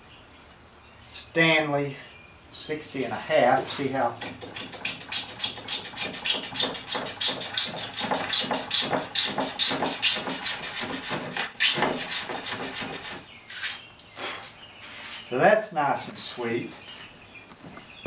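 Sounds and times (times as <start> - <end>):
block plane shaving wood: 4.2 - 13.2.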